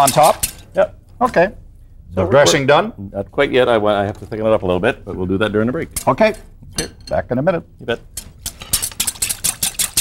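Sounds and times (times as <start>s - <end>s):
utensils tossing salad: 0.0s - 0.7s, 8.1s - 10.0s
whisk clinking against glass bowl: 8.2s - 10.0s.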